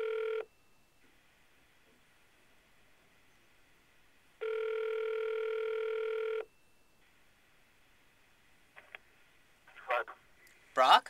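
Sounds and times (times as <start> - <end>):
telephone ringback tone: 0.0 - 0.7, 4.4 - 6.8.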